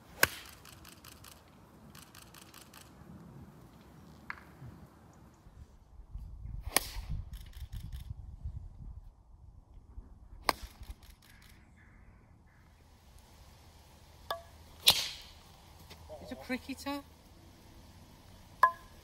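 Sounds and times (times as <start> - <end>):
wind rumble on microphone: 3.0 - 11.2
golf club striking ball: 18.6 - 19.0.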